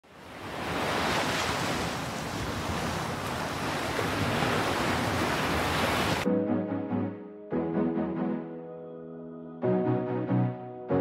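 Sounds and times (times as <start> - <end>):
ocean surf washing ashore: 0.1 - 6.3.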